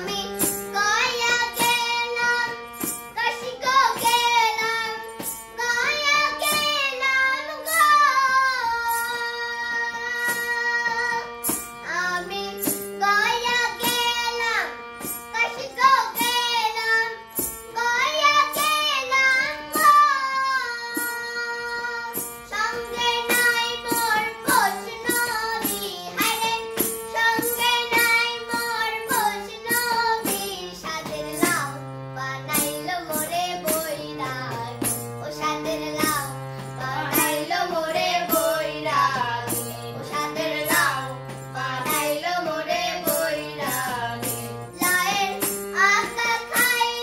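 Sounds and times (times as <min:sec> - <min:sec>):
child singing folk song: 0:00.0 - 0:47.0
harmonium accompaniment: 0:00.0 - 0:47.0
woman singing: 0:17.8 - 0:47.0.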